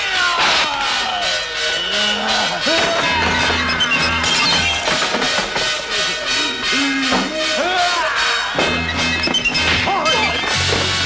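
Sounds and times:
kung fu film music: 0.0s - 11.0s.

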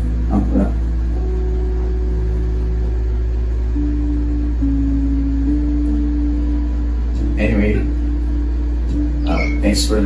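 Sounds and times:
long held notes: 0.0s - 10.0s
low drone: 0.0s - 10.0s.

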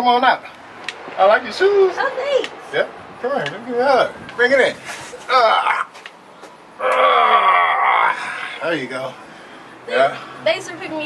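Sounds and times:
person groaning with strain: 6.8s - 8.6s.

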